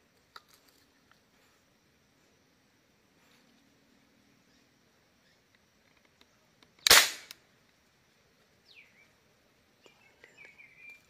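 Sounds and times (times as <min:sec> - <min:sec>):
marble gun shot: 0:06.8 - 0:07.4.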